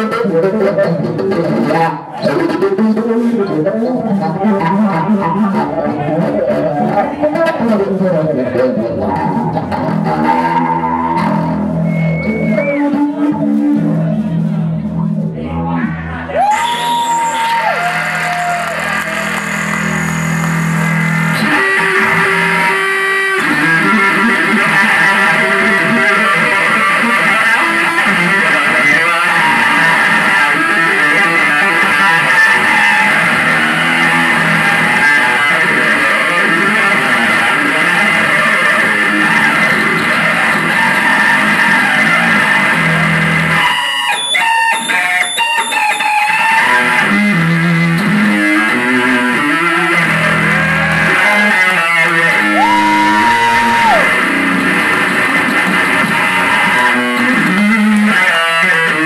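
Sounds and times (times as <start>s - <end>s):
live rock band playing: 0.0s - 59.0s
bending high guitar note: 8.3s - 16.3s, 18.9s - 59.0s.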